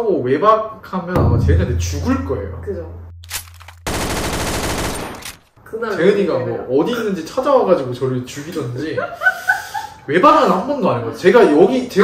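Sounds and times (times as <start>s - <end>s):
video game automatic rifle fire: 3.8s - 5.5s.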